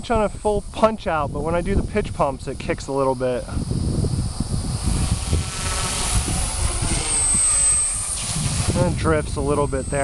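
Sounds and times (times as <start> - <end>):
wind on microphone: 0.0 - 10.0
rc helicopter motor whining: 1.4 - 10.0.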